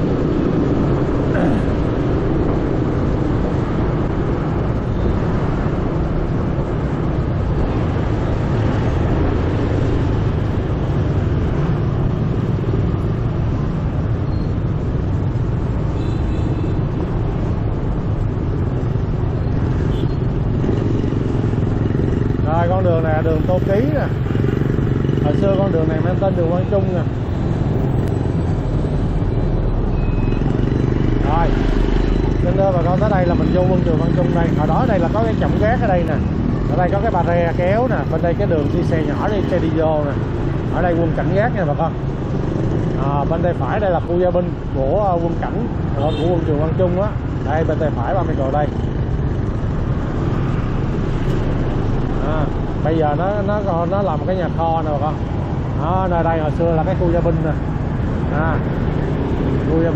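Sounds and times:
motorbikes and cars passing: 0.0s - 59.9s
scooter engine and road rumble: 0.0s - 59.9s.

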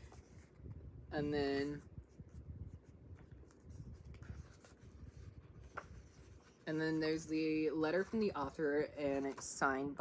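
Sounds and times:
book pages rustling: 0.0s - 0.8s, 1.6s - 10.0s.

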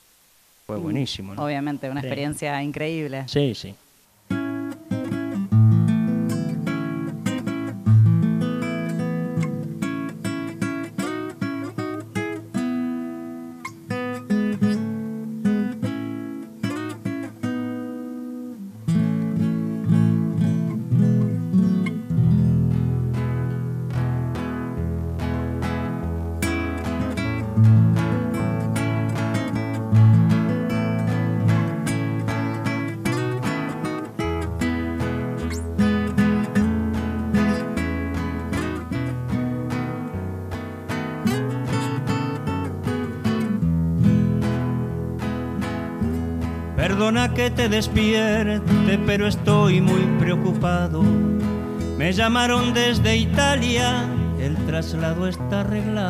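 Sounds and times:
nylon-string guitars playing: 4.3s - 56.0s.

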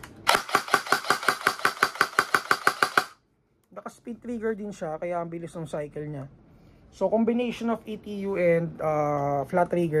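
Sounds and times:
airsoft rifle firing rapidly: 0.3s - 3.2s.

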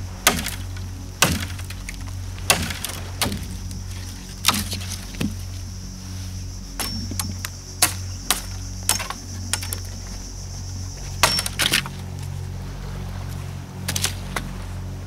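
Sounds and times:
machete chopping twigs: 0.2s - 5.5s, 6.8s - 9.8s, 11.2s - 11.9s.

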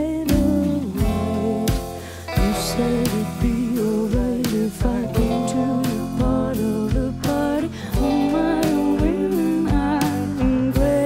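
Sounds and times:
drum hits: 0.3s - 11.0s
small band playing instrumental: 0.3s - 11.0s.

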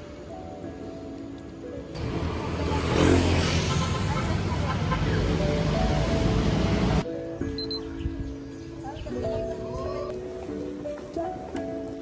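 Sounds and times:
motor vehicle engine rumble: 1.9s - 7.1s.

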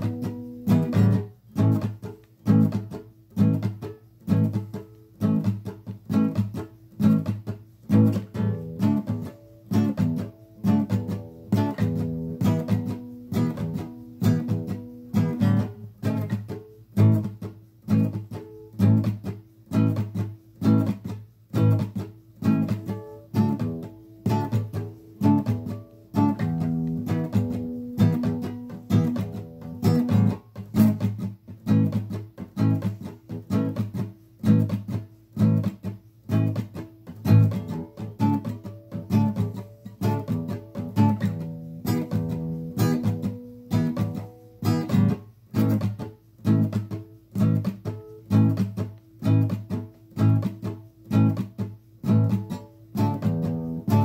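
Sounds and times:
acoustic guitar strumming: 0.0s - 54.0s.

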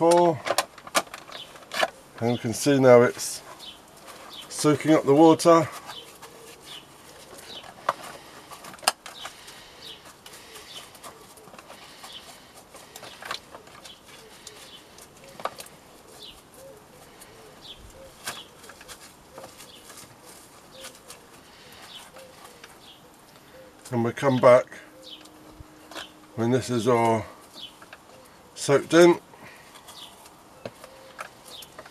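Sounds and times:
birds chirping faintly: 0.0s - 31.9s
hands squeezing wet coir: 0.1s - 23.9s
pigeon cooing: 5.6s - 23.9s, 24.8s - 26.4s, 27.1s - 28.6s, 29.4s - 31.9s.

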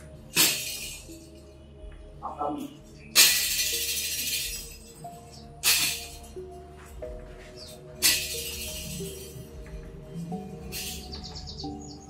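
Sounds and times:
background music: 0.0s - 12.0s
hissing shatter crash: 0.3s - 1.2s, 3.2s - 4.8s, 5.6s - 6.2s, 8.0s - 9.3s, 10.7s - 11.2s.

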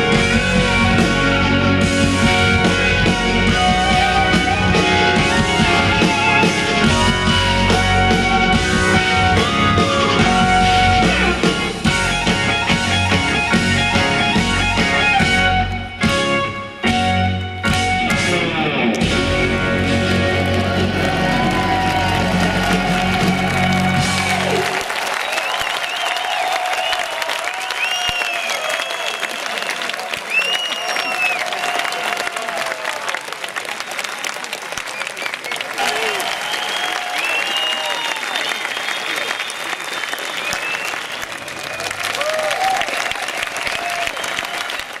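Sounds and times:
rock band chord: 0.0s - 24.5s
crowd applauding and cheering: 0.0s - 45.0s
whistles: 25.2s - 31.7s, 34.9s - 42.2s, 43.8s - 44.9s.

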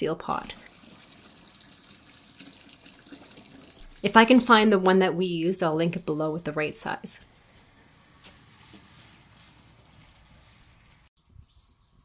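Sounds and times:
liquid pouring into pot: 0.5s - 4.1s.

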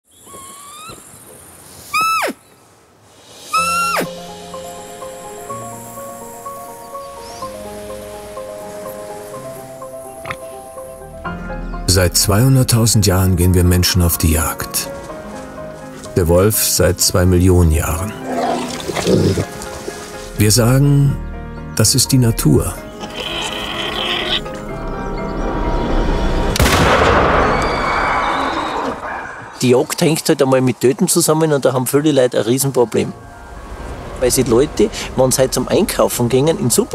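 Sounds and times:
high animal cries: 0.2s - 1.0s, 1.9s - 2.4s, 3.5s - 4.2s, 22.9s - 24.6s, 27.5s - 29.6s
steady high hiss: 0.4s - 11.3s
low sustained music: 4.1s - 23.0s, 24.4s - 26.9s.

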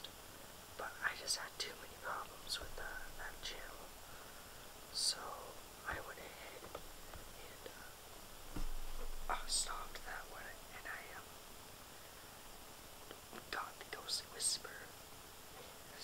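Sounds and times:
person whispering: 0.8s - 4.0s, 4.9s - 8.0s, 9.2s - 11.3s, 13.4s - 15.0s, 15.6s - 16.0s.

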